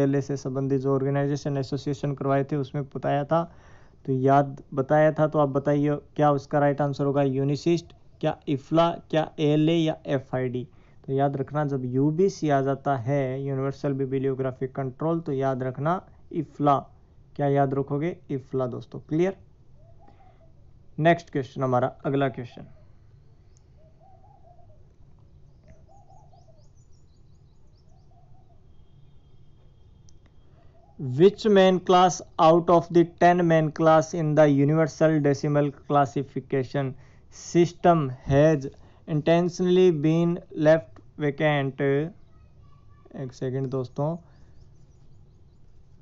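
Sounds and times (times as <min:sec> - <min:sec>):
man speaking: 0:00.0 - 0:19.4, 0:21.0 - 0:22.8, 0:31.0 - 0:42.2, 0:43.1 - 0:44.3
low steady background hiss: 0:00.0 - 0:46.0
low bird call: 0:19.8 - 0:20.7, 0:22.5 - 0:31.2.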